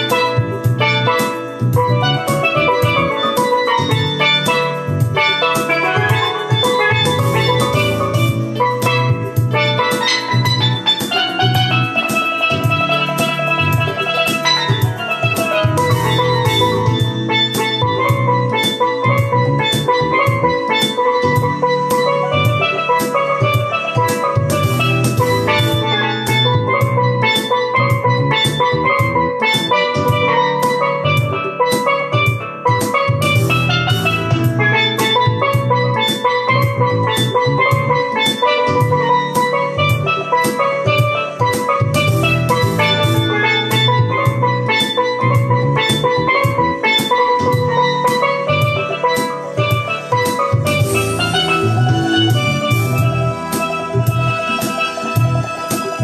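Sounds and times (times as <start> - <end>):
bass line: 0.0 - 56.0
steady drum beat: 0.0 - 56.0
steel pan melody: 0.0 - 56.0.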